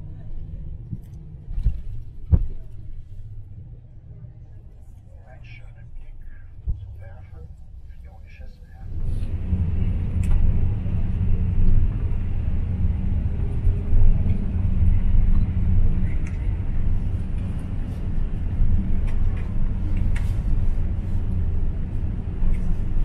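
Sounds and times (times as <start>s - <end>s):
car cabin road rumble: 0.0s - 23.0s.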